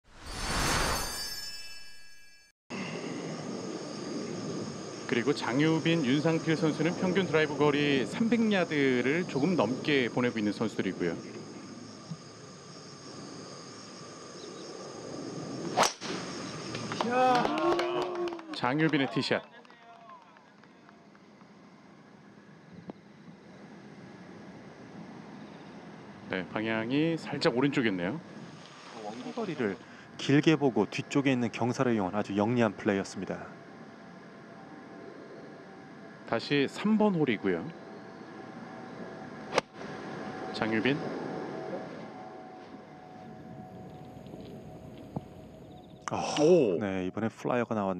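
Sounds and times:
low outdoor background: 0:00.1 - 0:47.9
high-pitched drone: 0:00.2 - 0:17.2.

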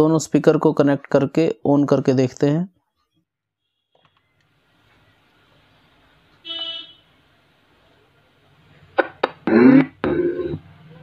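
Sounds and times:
stuttering speaker audio: 0:08.8 - 0:11.0.

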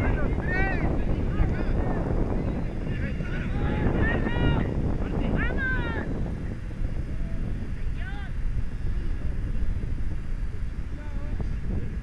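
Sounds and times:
steady low rumble: 0:00.0 - 0:12.0
players shouting: 0:02.8 - 0:06.1.

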